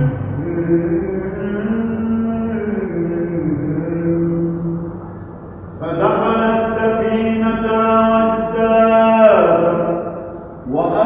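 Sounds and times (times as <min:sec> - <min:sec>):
man chanting: 0:00.0 - 0:04.9, 0:05.8 - 0:11.0.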